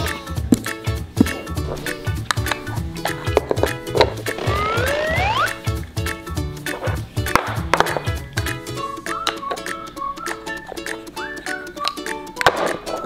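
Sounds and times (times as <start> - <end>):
upbeat children's music: 0.0 - 13.0
rising whistle-like sound effect: 4.4 - 5.6.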